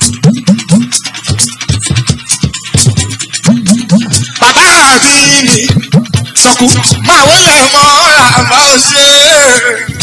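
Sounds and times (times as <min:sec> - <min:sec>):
dense percussion: 0:00.0 - 0:10.0
talking drum pitch-bending strokes: 0:00.0 - 0:10.0.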